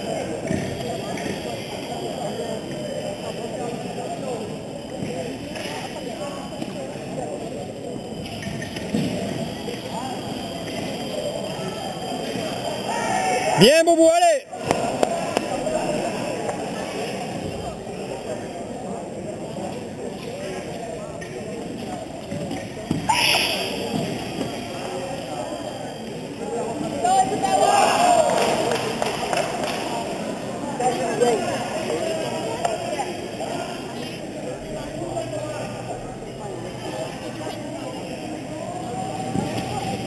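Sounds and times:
indistinct chatter in echoing hall: 0.0s - 40.0s.

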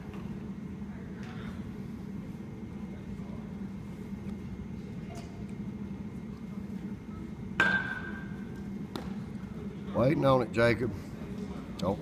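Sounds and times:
metal bat hitting baseball: 7.6s - 8.3s.

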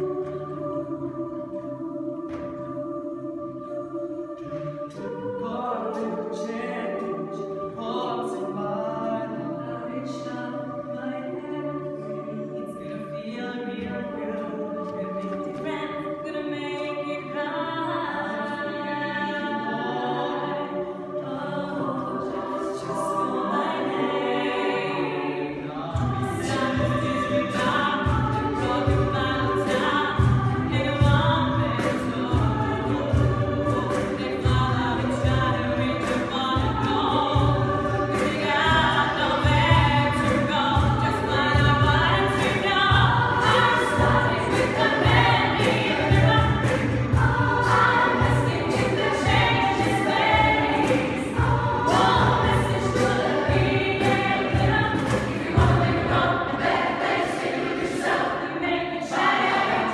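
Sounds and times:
vocal ensemble singing in harmony: 0.0s - 59.9s.

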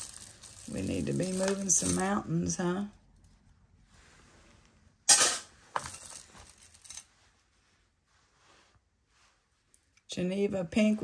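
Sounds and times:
jewelry rustling and clinking: 0.0s - 4.2s, 5.1s - 7.6s.

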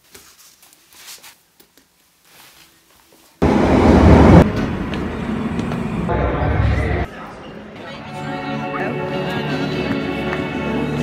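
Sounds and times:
train running past: 3.4s - 7.3s.

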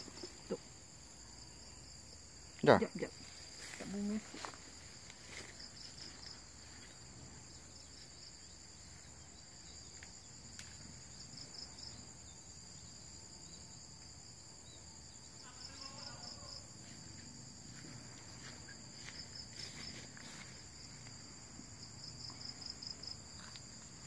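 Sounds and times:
rapid pulsed insect chirps: 0.0s - 24.0s.

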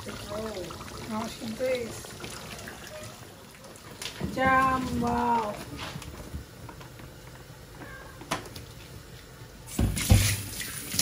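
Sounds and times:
tap water running into sink: 0.0s - 5.5s, 9.7s - 11.0s.

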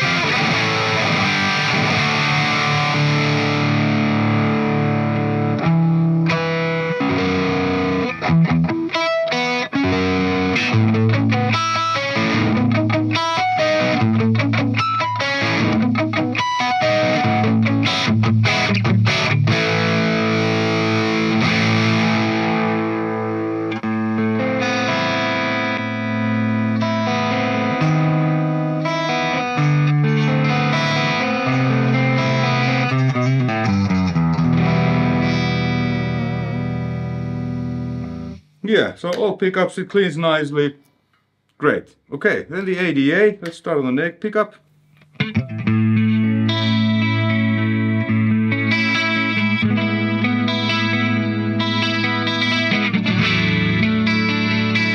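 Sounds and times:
distorted electric guitar: 0.0s - 39.3s, 44.5s - 54.9s.

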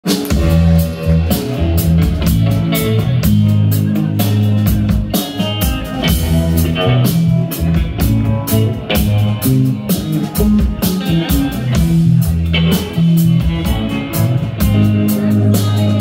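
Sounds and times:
drum kit beat: 0.0s - 16.0s
electric bass: 0.0s - 16.0s
electric guitar: 0.0s - 16.0s.

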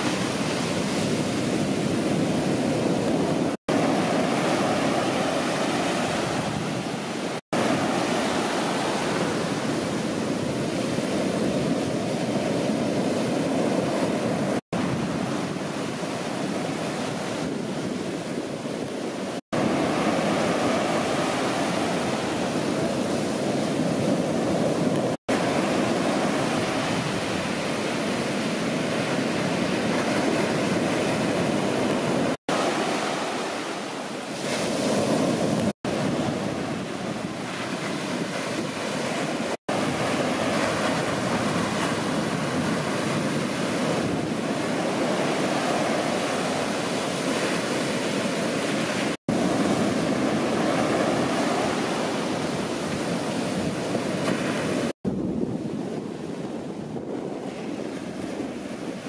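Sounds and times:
ocean surf breaking: 0.0s - 59.0s
wind on microphone: 0.0s - 59.0s.

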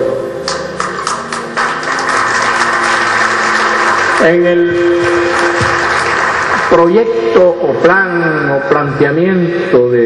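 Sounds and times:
audience applause: 0.8s - 7.4s.

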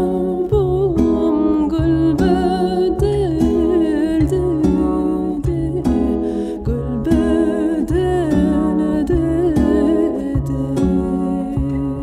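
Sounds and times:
double bass notes: 0.0s - 12.0s
plucked cittern: 0.0s - 12.0s.

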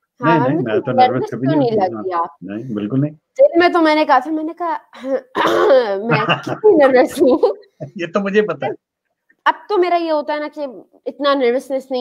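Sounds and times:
man speaking word: 0.2s - 3.2s, 6.1s - 8.8s
man clearing throat: 0.3s - 1.5s, 5.4s - 6.7s, 7.8s - 8.8s
man stifled laugh: 6.1s - 8.7s.

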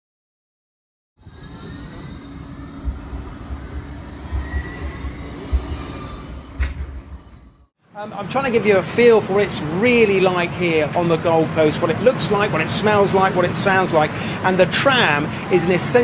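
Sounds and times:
high whining tones: 1.2s - 7.7s
tram rumbling: 1.2s - 8.4s.

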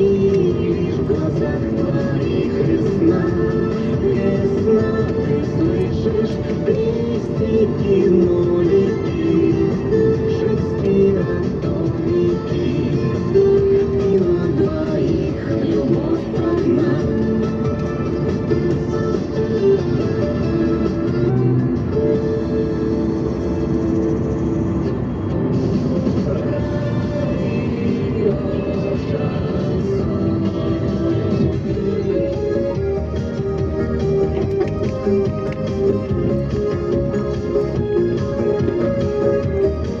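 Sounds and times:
instrumental music with held tones: 29.6s - 40.0s.

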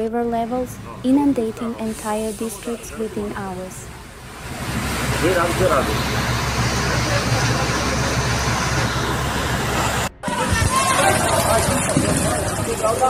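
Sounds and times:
car driving rumble and hiss: 1.8s - 10.1s.

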